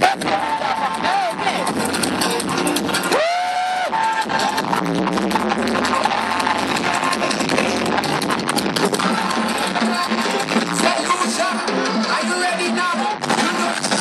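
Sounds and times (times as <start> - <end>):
carnival music with driving percussion: 0.0 - 14.0.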